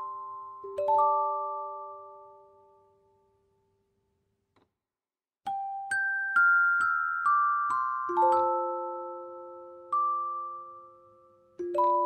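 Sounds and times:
music-box notes: 0.0s - 3.3s, 5.5s - 12.0s.

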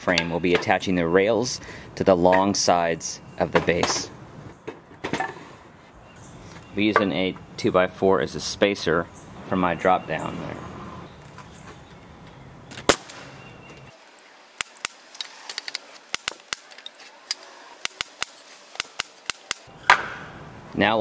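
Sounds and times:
nail gun shot: 12.7s - 13.4s.

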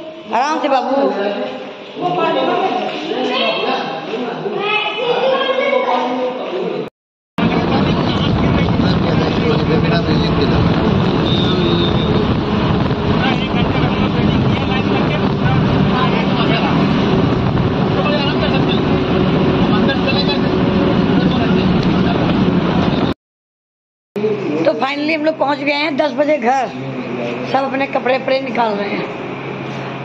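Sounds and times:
bus engine drone: 7.4s - 23.2s, 24.2s - 30.0s
road noise: 7.4s - 23.2s, 24.2s - 30.0s.

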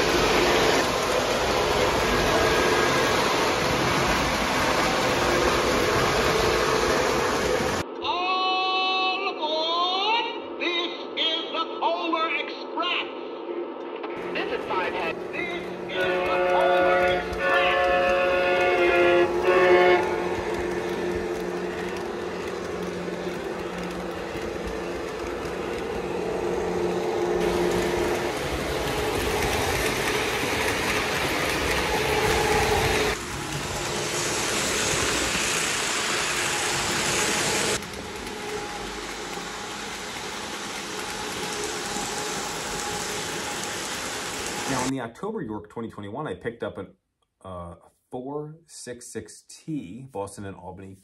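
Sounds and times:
model train rolling on track: 0.0s - 7.8s, 14.2s - 44.9s
model train horn: 15.4s - 22.0s.

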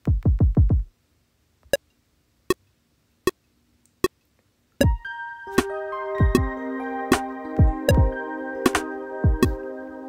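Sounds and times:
metronome clicks: 4.8s - 9.6s.

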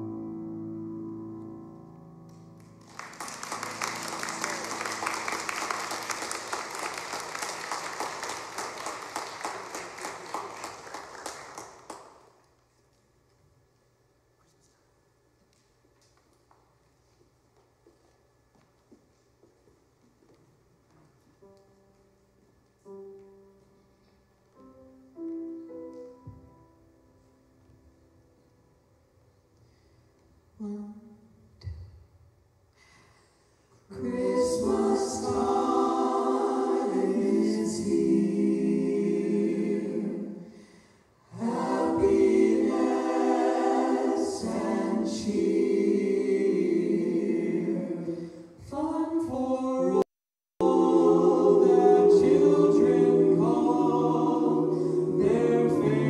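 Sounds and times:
piano notes ringing: 0.0s - 6.7s, 21.4s - 29.3s
vocal ensemble singing harmony: 33.8s - 56.0s.

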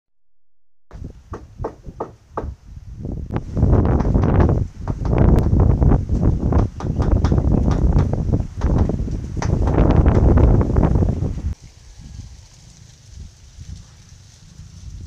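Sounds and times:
wind buffeting microphone: 0.9s - 15.0s
sharp clicks and knocks: 3.9s - 5.6s.

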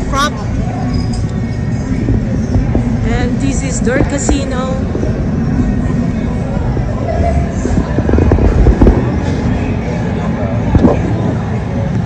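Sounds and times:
heavy low rumble: 0.0s - 12.0s.

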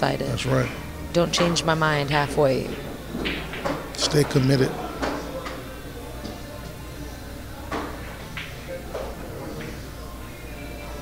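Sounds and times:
low voices: 0.0s - 11.0s
steady hum: 0.0s - 11.0s.

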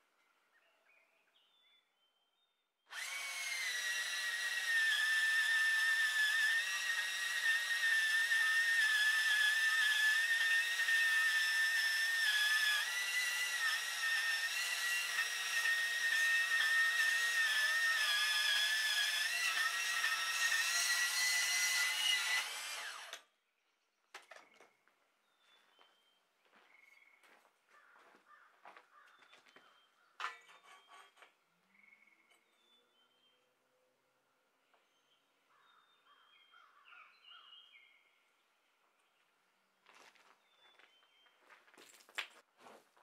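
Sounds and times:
angle grinder whining: 2.9s - 23.3s.

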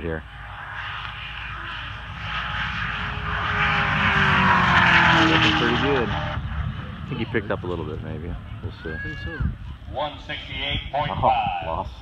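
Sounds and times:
race car passing at high speed: 0.3s - 8.8s.

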